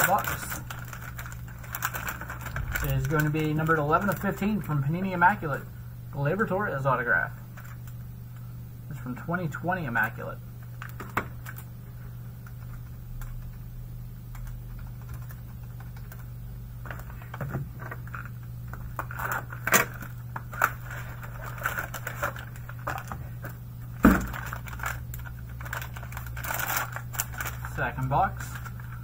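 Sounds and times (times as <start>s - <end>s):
wrapper rustle: 0.0s - 4.7s, 16.9s - 29.0s
low hum: 0.0s - 29.0s.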